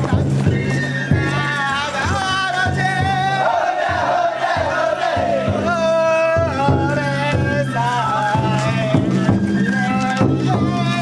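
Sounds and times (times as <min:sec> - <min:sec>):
wavering voices or flute: 0:00.0 - 0:03.6, 0:04.6 - 0:11.0
drum and gong strikes: 0:00.0 - 0:07.7, 0:08.3 - 0:09.6.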